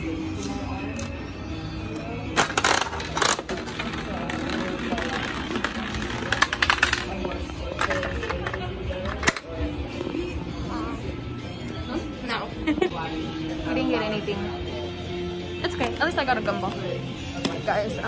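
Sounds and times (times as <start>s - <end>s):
background music: 0.0s - 18.0s
coin inserted into machine: 2.3s - 9.6s.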